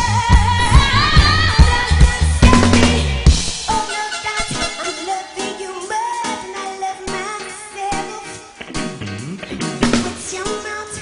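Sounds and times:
live reggae band: 0:00.0 - 0:11.0.

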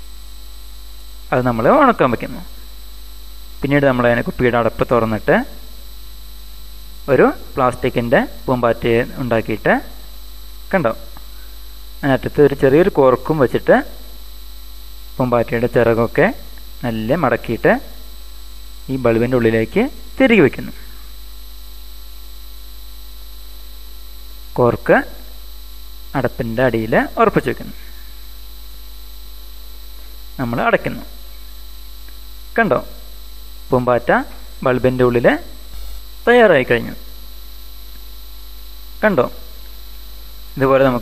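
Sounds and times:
electrical mains hum: 0:00.0 - 0:41.0
person narrating: 0:01.3 - 0:02.6, 0:03.6 - 0:05.6, 0:07.1 - 0:10.0, 0:12.0 - 0:14.0, 0:15.2 - 0:18.0, 0:18.9 - 0:20.9, 0:26.2 - 0:28.0, 0:30.4 - 0:31.2, 0:33.7 - 0:35.6, 0:36.2 - 0:37.1, 0:39.0 - 0:39.5, 0:40.6 - 0:41.0.

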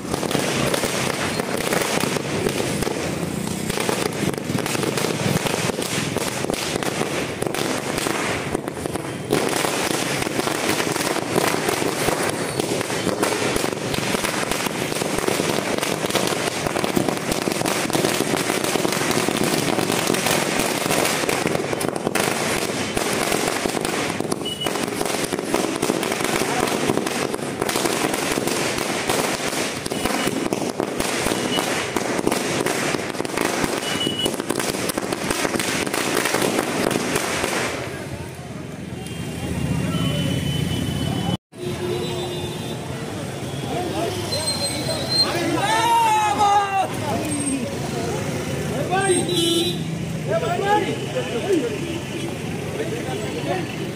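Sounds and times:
firecrackers bursting: 0:00.0 - 0:41.9.

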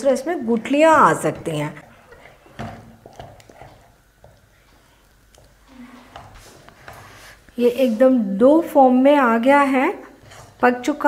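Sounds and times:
spatula scraping batter in pan: 0:10.0 - 0:11.0.

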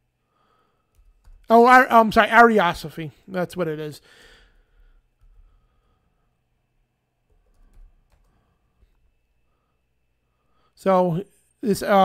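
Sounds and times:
keyboard keystrokes: 0:00.9 - 0:01.5, 0:07.3 - 0:08.4.

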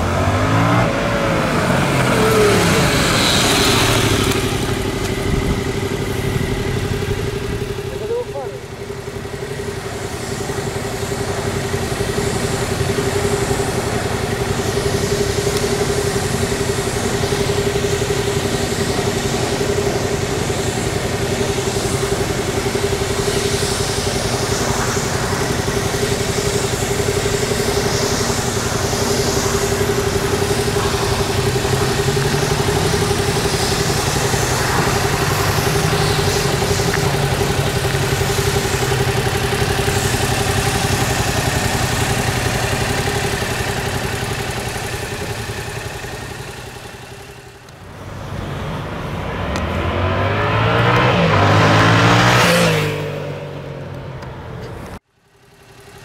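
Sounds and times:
motorcycle engine idling: 0:00.8 - 0:49.7, 0:54.1 - 0:56.0.

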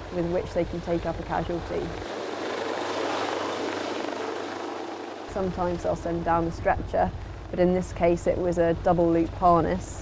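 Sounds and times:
helicopter rotor and engine: 0:00.0 - 0:10.0.

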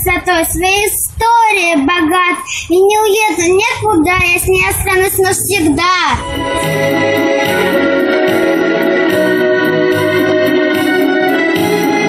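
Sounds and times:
girl singing: 0:00.0 - 0:06.4.

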